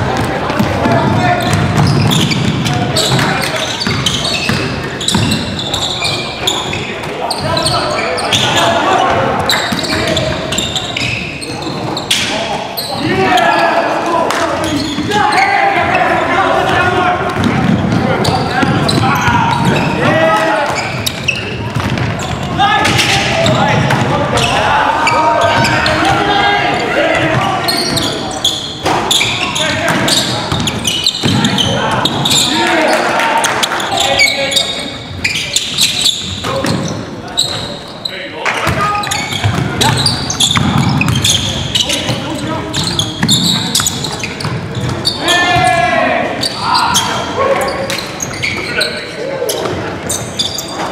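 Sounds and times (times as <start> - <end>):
players calling out: 0.0 - 50.9
basketball bouncing on hardwood floor: 0.2 - 5.4, 17.3 - 18.0, 21.7 - 22.2.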